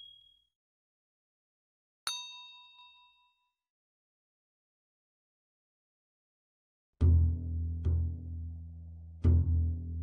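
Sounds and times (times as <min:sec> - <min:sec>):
bell ding: 0:00.0 - 0:00.4, 0:02.1 - 0:03.5.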